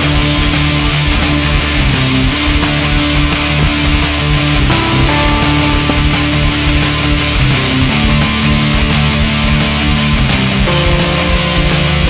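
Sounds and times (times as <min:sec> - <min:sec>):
loud rock music with guitar: 0:00.0 - 0:12.0.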